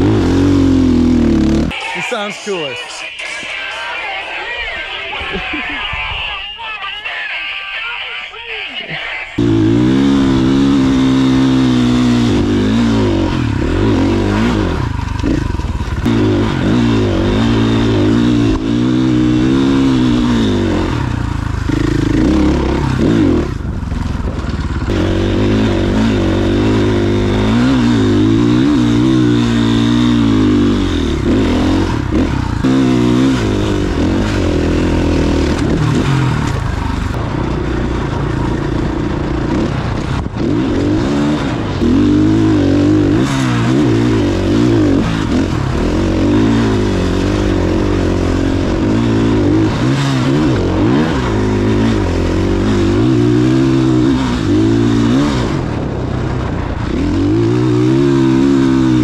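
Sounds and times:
dirt bike engine revving: 0.0s - 2.3s, 9.4s - 59.0s.

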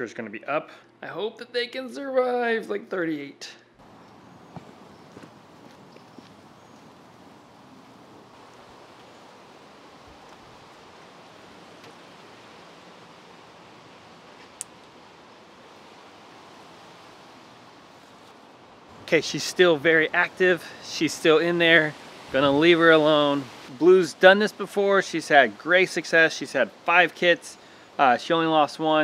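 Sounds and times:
outdoor background hiss: 0.0s - 29.0s.

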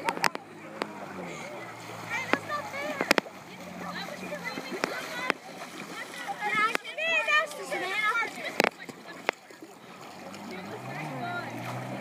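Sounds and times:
jet ski engine running: 0.0s - 12.0s.

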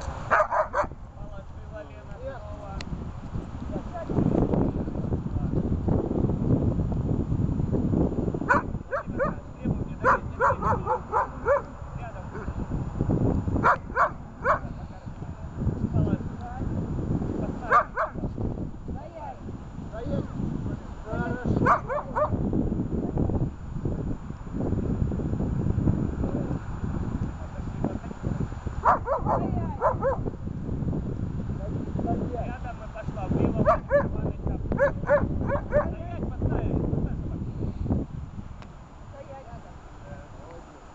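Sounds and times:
dog yelping barks: 0.3s - 0.9s, 8.5s - 9.4s, 10.0s - 11.7s, 13.6s - 14.6s, 17.7s - 18.2s, 21.6s - 22.4s, 28.8s - 30.2s, 34.8s - 35.9s.

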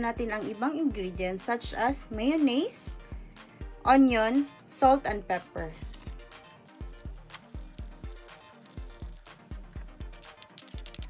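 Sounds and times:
background music with beat: 0.0s - 11.0s
light high clicks: 10.0s - 11.0s.

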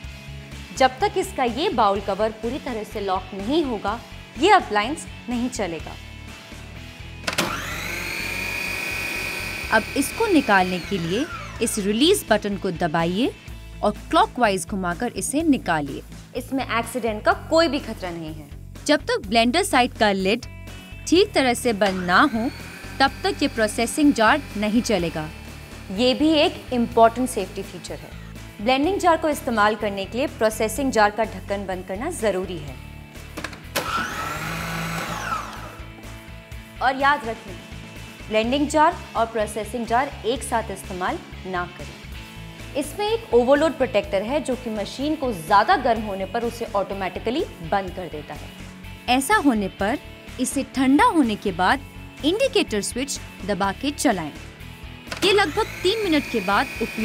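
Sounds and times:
food processor motor whining: 7.2s - 12.2s, 21.5s - 28.6s, 33.4s - 36.1s, 54.9s - 57.0s.

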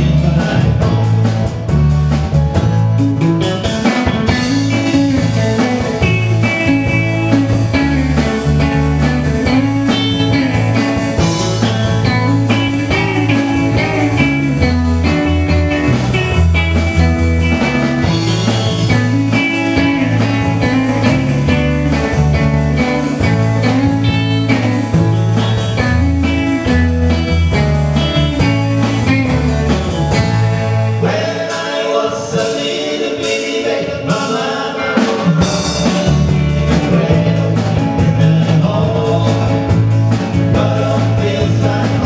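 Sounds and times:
bass line: 0.0s - 42.0s
drum kit: 0.0s - 42.0s
electric guitars: 0.0s - 42.0s.

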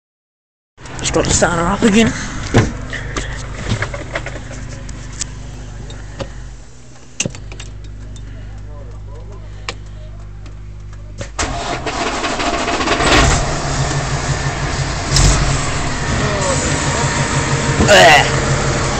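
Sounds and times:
engine clicks and knocks: 0.8s - 5.0s, 7.2s - 18.9s
diesel truck engine idling: 0.9s - 18.9s.

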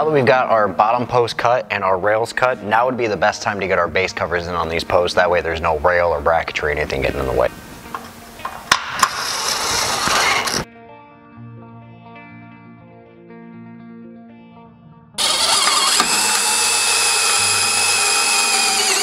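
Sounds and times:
quiet background music: 0.0s - 15.1s
cordless driver whining: 9.0s - 10.7s, 15.2s - 19.0s.

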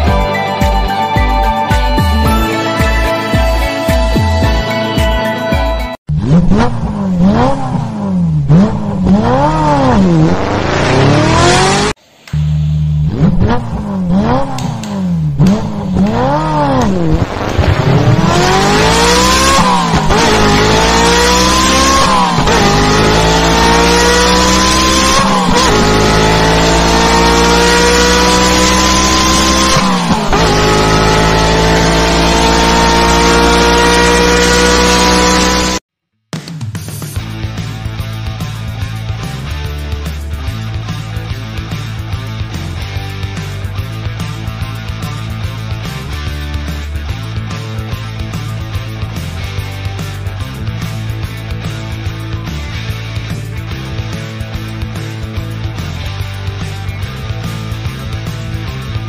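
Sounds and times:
sports car engine revving: 6.1s - 35.8s.

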